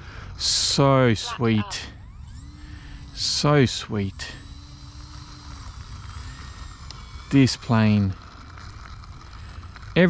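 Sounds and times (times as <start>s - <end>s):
low steady rumble: 0.0s - 10.0s
man talking: 0.4s - 2.0s, 3.2s - 4.4s, 7.3s - 8.2s.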